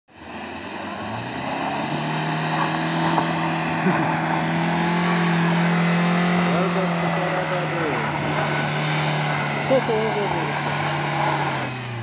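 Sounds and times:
car engine running under load: 0.1 - 12.0.

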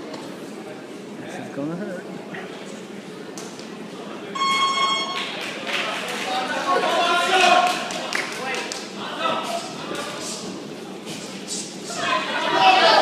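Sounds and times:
electronic buzzer tone: 4.4 - 5.3
crowd shouting: 6.4 - 7.8, 11.9 - 13.0.

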